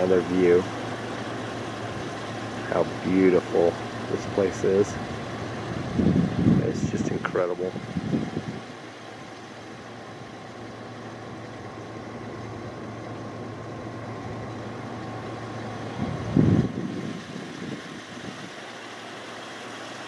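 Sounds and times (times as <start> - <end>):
truck engine idling: 0.0 - 20.0
low rumble: 13.6 - 18.5.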